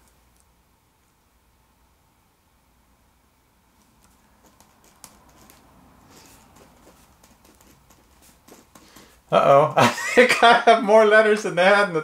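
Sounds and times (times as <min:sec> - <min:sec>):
pen scratching on paper: 0:04.4 - 0:09.2.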